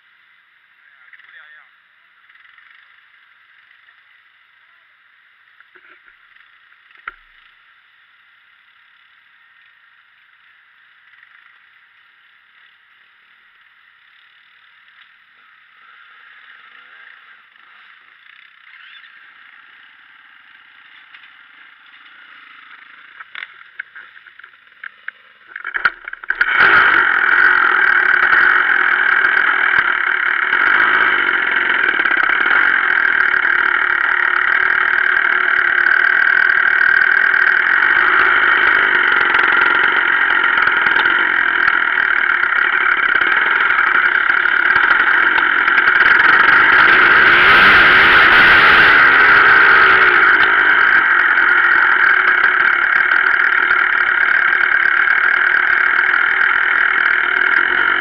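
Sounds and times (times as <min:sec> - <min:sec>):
dirt bike engine running: 0:00.0 - 0:58.0.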